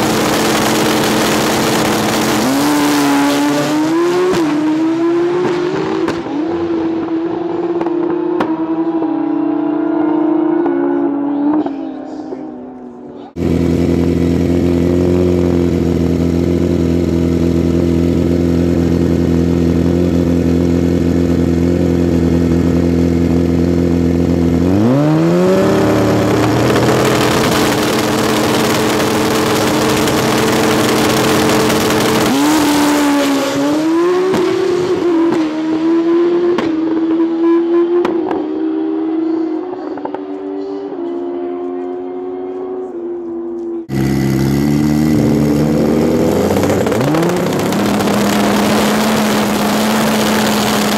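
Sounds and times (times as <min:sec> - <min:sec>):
drag motorcycle engine revving: 0:00.0 - 0:50.9.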